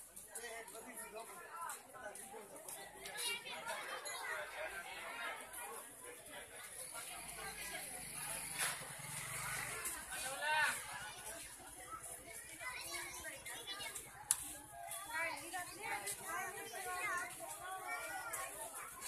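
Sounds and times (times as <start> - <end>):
crowd of women and children talking: 0.0 - 19.0.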